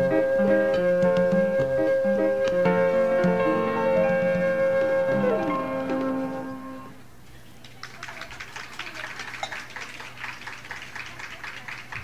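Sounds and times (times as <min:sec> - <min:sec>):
piano and flute chord: 0:00.0 - 0:07.0
audience applauding: 0:07.6 - 0:12.0.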